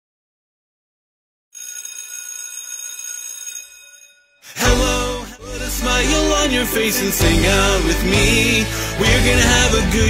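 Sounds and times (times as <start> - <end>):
high bell-like ringing: 1.6 - 4.7.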